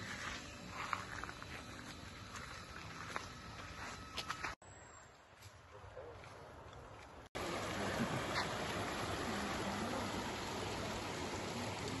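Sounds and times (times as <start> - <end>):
steady low hiss: 7.1 - 12.0.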